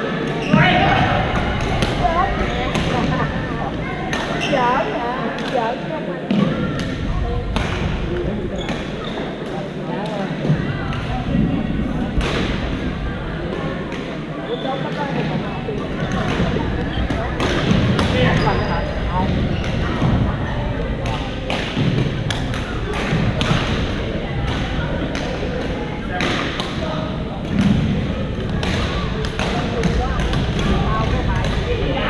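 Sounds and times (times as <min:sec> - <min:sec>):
players chatting: 0:00.0 - 0:32.0
rackets hitting shuttlecocks: 0:27.4 - 0:31.7.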